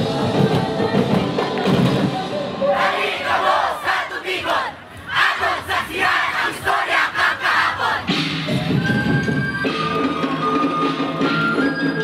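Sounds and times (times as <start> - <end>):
drumming: 0.0 - 12.0.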